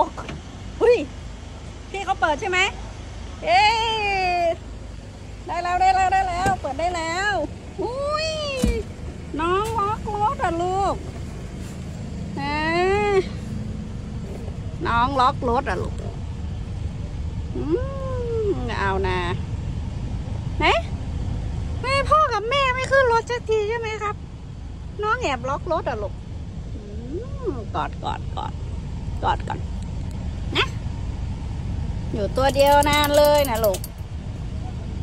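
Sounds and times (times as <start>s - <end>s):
car engine idling hum: 0.0s - 35.0s.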